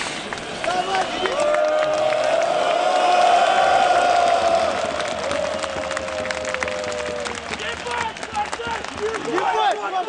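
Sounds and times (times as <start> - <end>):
scattered claps: 0.2 - 10.0.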